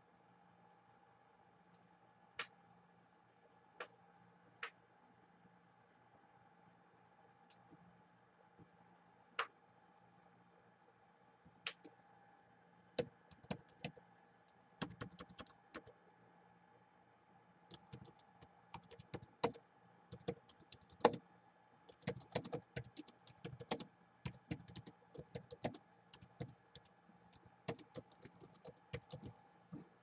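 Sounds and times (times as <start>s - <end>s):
laptop keyboard typing: 13.0s - 14.0s, 14.8s - 16.0s, 17.7s - 21.2s, 21.9s - 29.4s.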